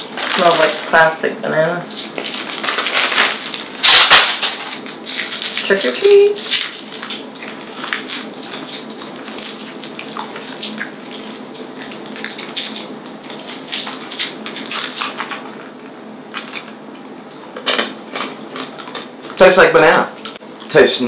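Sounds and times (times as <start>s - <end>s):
plastic wrappers crinkling: 0.0s - 1.1s, 1.9s - 15.5s.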